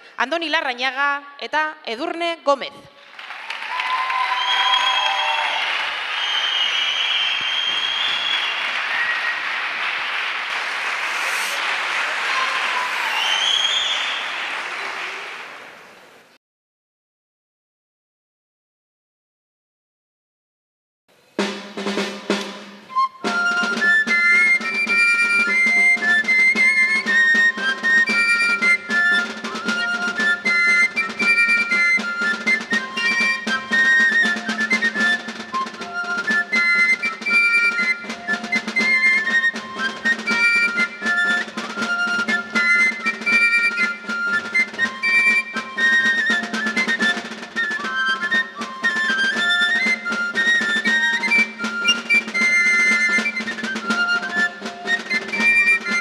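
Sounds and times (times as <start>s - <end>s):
pipe playing folk dance tune: 3.6s - 15.3s, 21.4s - 56.0s
drum strokes: 4.7s - 15.6s, 21.4s - 56.0s.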